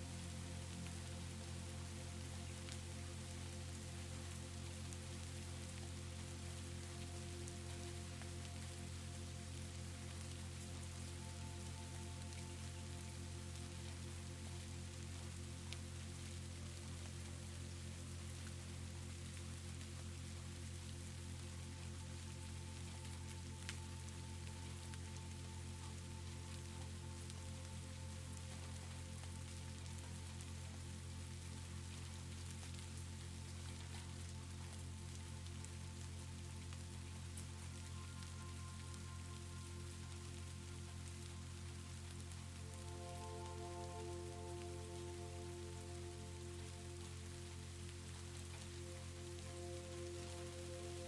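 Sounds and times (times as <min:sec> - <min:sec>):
soft slow music of low tones: 0:00.0 - 0:51.0
steady rain falling: 0:00.0 - 0:51.0.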